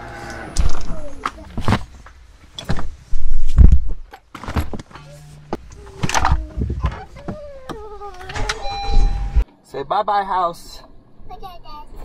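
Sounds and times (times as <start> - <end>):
car engine starting and running: 4.9 - 9.4.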